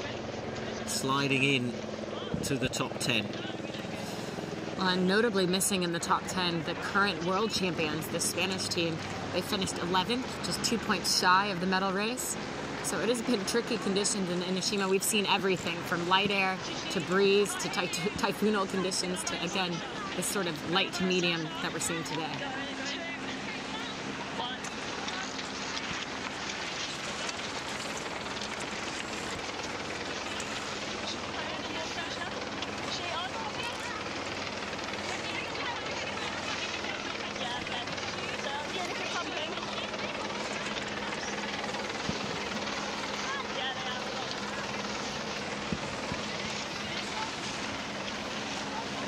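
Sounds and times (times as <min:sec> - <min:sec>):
low engine drone: 0:00.0 - 0:49.0
water noise: 0:00.0 - 0:49.0
wind: 0:00.0 - 0:49.0.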